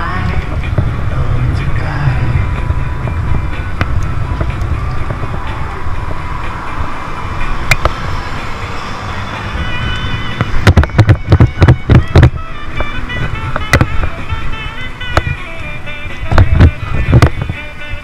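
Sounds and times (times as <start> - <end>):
music playing: 0.0 - 18.0
road traffic: 0.0 - 18.0
wind rumble on microphone: 0.0 - 18.0.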